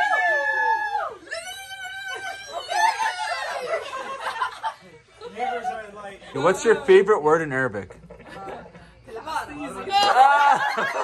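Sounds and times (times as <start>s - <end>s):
women squealing and laughing: 0.0s - 4.8s, 9.8s - 11.0s.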